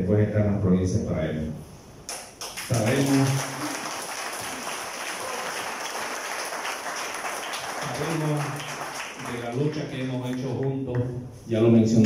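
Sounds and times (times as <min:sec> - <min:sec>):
audience applauding: 0:02.4 - 0:11.0.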